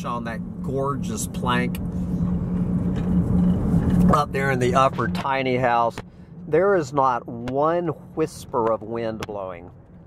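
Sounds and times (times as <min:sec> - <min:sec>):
car engine hum: 0:00.0 - 0:10.0
tyre and road rumble: 0:00.0 - 0:10.0.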